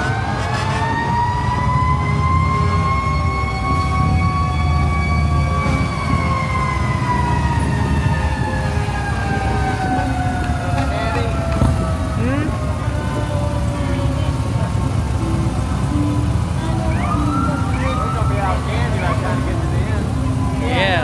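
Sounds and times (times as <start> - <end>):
siren wailing: 0.0 - 14.6, 15.9 - 21.0.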